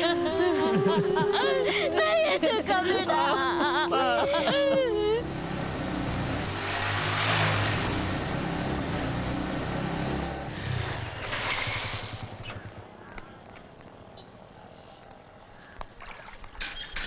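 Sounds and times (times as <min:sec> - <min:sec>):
motorcycle engine passing: 0:00.0 - 0:14.5.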